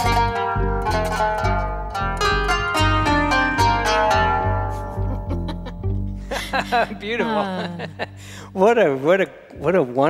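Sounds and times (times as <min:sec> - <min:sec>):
qanun plucked notes: 0:00.0 - 0:08.8
upright bass plucking: 0:00.0 - 0:09.8.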